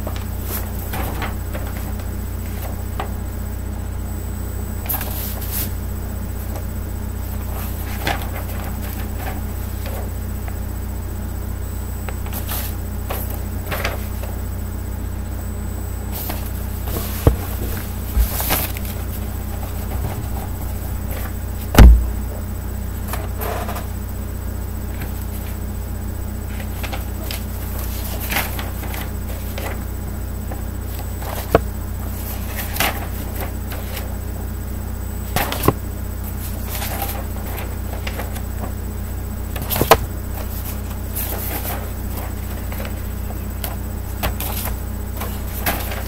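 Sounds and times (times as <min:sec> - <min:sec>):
paper rustling: 0:00.0 - 0:03.1, 0:04.8 - 0:05.8, 0:07.2 - 0:10.6, 0:12.2 - 0:14.4, 0:16.1 - 0:22.1, 0:24.9 - 0:25.6, 0:26.5 - 0:29.9, 0:30.5 - 0:34.2, 0:35.2 - 0:38.8, 0:39.5 - 0:46.0
steady low hum: 0:00.0 - 0:46.0.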